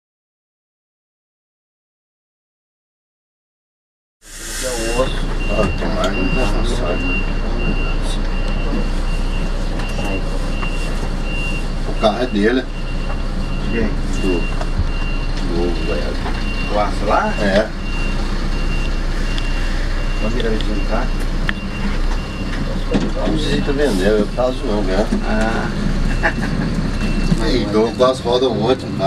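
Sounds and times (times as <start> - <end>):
diesel bus engine idling: 4.3 - 29.0
people's voices: 4.3 - 29.0
reversing alarm beeping: 4.4 - 28.6.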